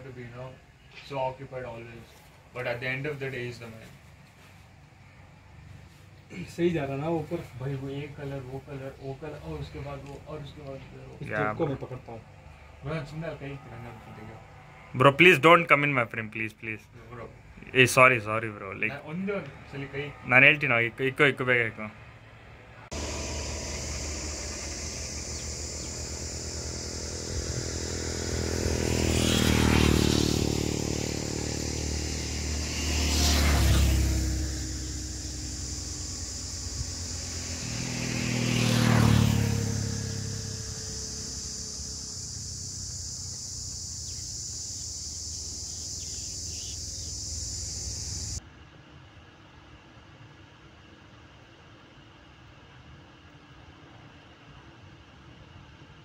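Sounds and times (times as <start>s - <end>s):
motor vehicles passing by: 7.2s - 15.4s, 19.2s - 48.4s
steady high hiss: 22.9s - 48.4s.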